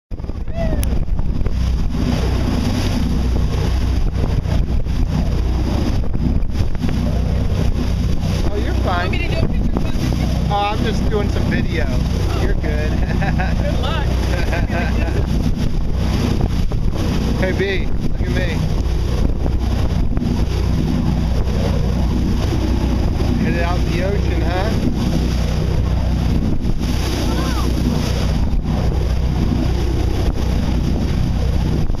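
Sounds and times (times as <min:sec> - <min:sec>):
water rushing along boat hull: 0:00.1 - 0:32.0
wind buffeting microphone: 0:00.1 - 0:32.0.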